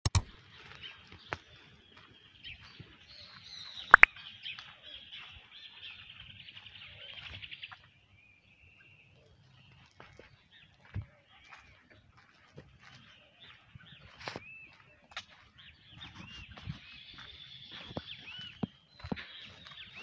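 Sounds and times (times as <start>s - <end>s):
birds chirping and calling: 0.1s - 20.0s.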